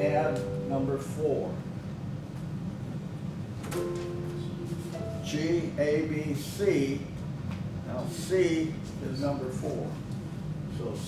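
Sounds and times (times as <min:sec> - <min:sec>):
higher keyboard note: 0:00.0 - 0:01.2, 0:03.7 - 0:05.8
electronic keyboard chord: 0:00.0 - 0:01.3, 0:03.7 - 0:05.8.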